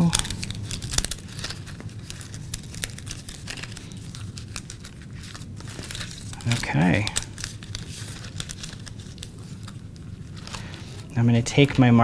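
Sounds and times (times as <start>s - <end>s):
poster board crinkling: 0.0s - 12.0s.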